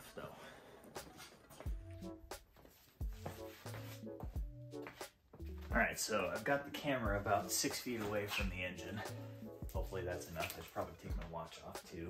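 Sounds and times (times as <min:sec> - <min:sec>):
background music with deep beat: 0:00.0 - 0:12.0.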